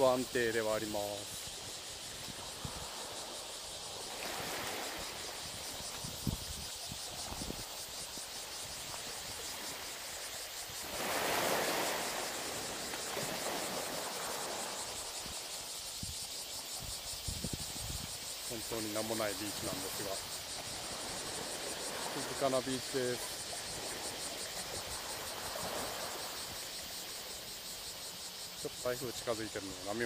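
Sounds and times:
small waves on rubble shore: 1.6s - 6.0s, 8.3s - 15.4s, 19.6s - 26.7s.

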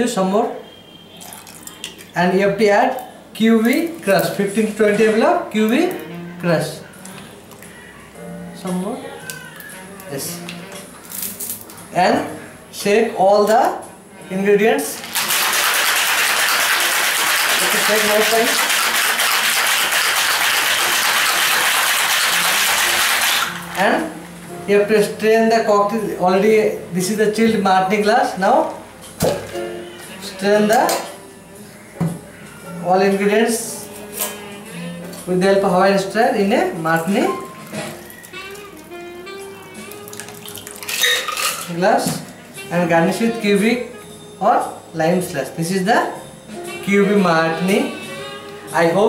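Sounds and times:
liquid pouring: 1.1s - 2.2s, 15.0s - 23.8s, 39.8s - 41.7s
ice rattling in cocktail shaker: 15.0s - 23.7s, 40.1s - 41.8s
background music sustained tones: 19.8s - 49.0s.

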